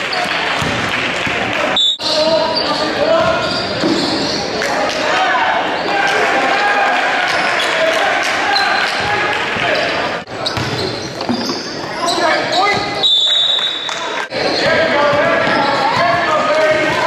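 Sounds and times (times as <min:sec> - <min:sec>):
voices echoing in hall: 0:00.0 - 0:17.0.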